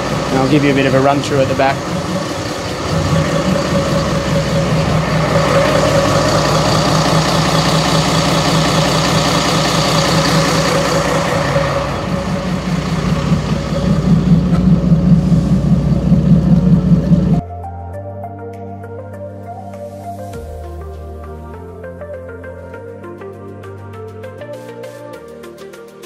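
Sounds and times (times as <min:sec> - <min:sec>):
marine diesel engines running: 0:00.0 - 0:17.4
pulsing low beat: 0:00.0 - 0:17.4.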